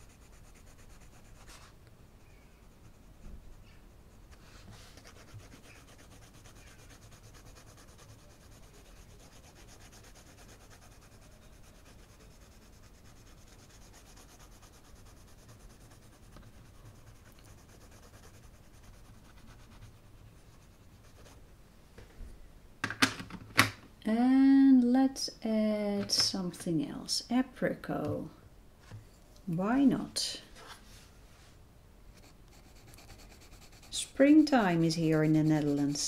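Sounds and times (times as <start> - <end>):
pencil scratching on paper: 0.0 - 1.7, 2.6 - 21.4, 32.2 - 36.0.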